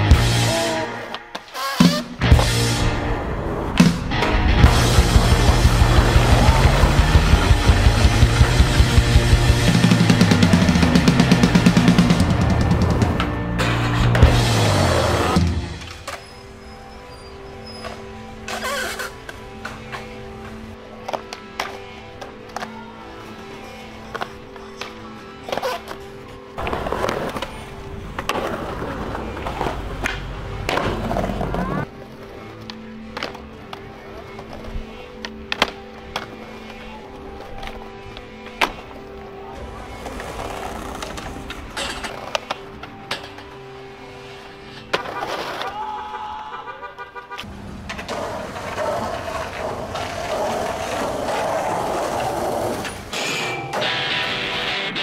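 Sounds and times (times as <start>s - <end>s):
skateboard wheels rolling on concrete: 0.0s - 55.0s
skateboard clacks: 47.3s - 54.0s.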